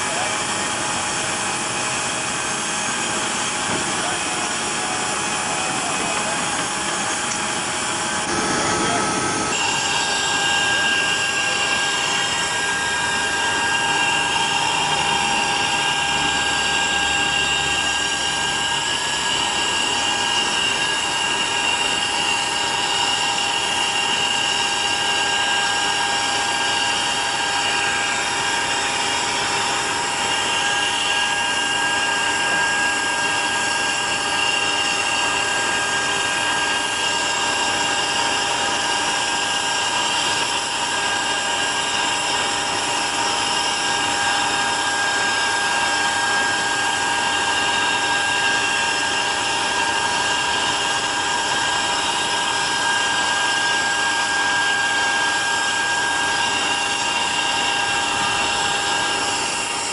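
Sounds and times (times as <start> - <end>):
jet turbine whine: 0.0 - 59.9.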